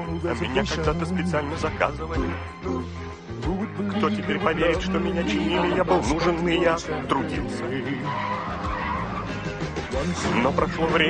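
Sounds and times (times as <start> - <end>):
cartoon song music: 0.0 - 11.0
noisy vehicle sound effect: 5.0 - 10.6.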